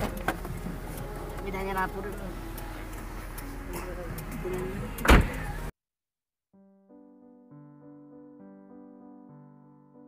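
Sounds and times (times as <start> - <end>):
thump in car interior: 5.0 - 5.4
soft electric piano music: 6.6 - 10.0.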